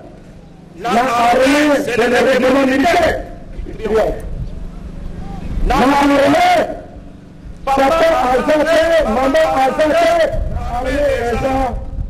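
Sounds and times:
faint steady hum: 0.0s - 12.0s
man giving a speech: 0.7s - 7.0s, 7.6s - 11.8s
low rumble: 3.0s - 12.0s.

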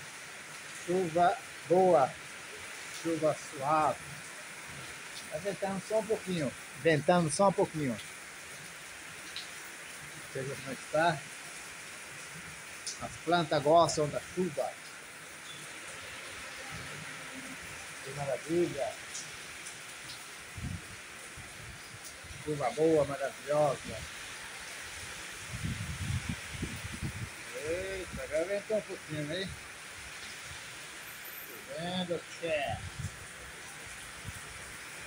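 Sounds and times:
rain on leaves and concrete: 0.0s - 35.0s
wind buffeting microphone: 20.5s - 22.4s, 25.4s - 27.4s.

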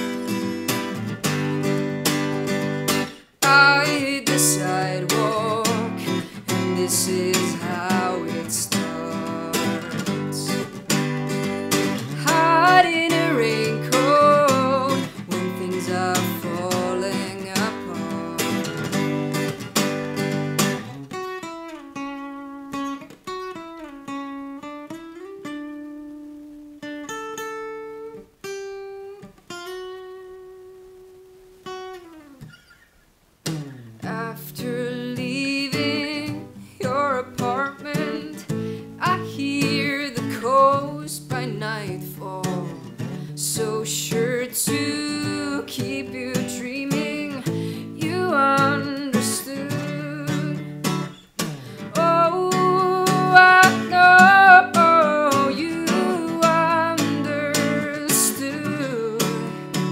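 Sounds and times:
acoustic guitar: 0.0s - 59.9s
woman singing: 3.0s - 19.2s, 34.0s - 51.1s, 51.8s - 59.9s.

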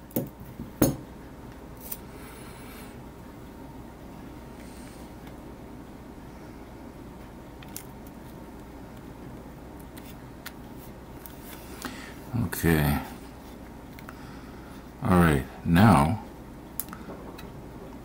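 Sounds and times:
low background noise: 0.0s - 18.0s.

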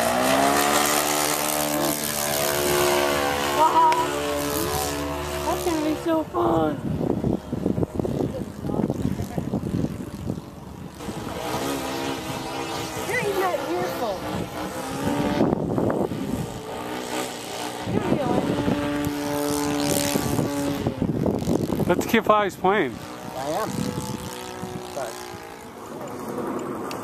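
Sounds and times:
model plane engine droning: 0.0s - 27.0s
rumbling wind noise: 0.0s - 27.0s.

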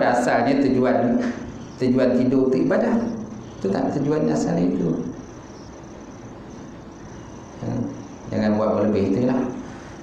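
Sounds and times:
faint high steady tone: 0.0s - 10.0s
low background hiss: 0.0s - 10.0s.

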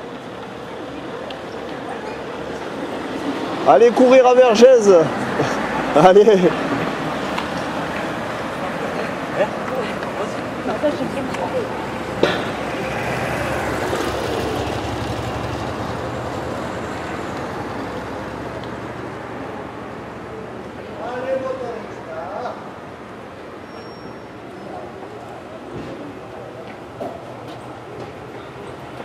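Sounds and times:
distant voices: 0.0s - 29.0s
steady traffic-like hum: 0.0s - 29.0s.

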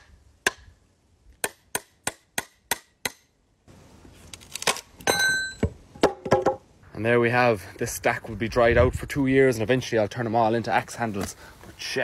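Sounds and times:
wood cracking and creaking: 4.2s - 5.1s.

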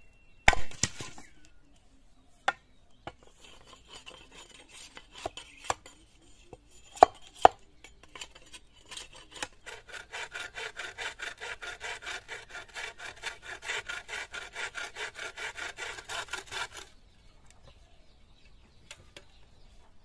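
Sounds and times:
knife striking bamboo: 0.5s - 1.2s
bow saw cutting bamboo: 3.1s - 5.9s, 7.0s - 16.9s.

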